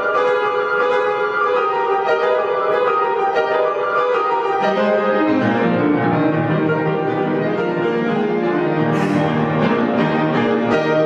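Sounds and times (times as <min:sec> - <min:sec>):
classical grand piano: 0:00.0 - 0:11.0.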